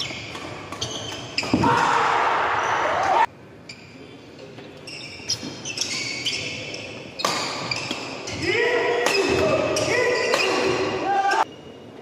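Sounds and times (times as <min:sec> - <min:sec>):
shoe soles squeaking on court: 0:00.0 - 0:01.6, 0:03.6 - 0:10.8.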